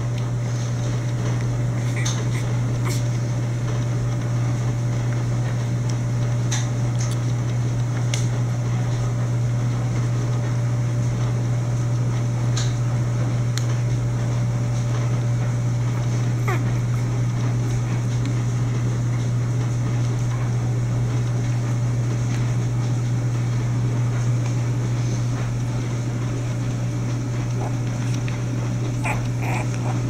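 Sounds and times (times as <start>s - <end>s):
steady low hum: 0.0s - 9.2s, 13.2s - 30.0s.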